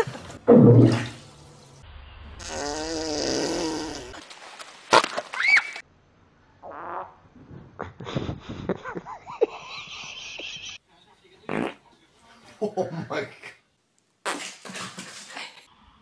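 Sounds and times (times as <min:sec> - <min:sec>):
animal farts: 0:02.4 - 0:04.2, 0:06.6 - 0:07.2, 0:11.5 - 0:11.8.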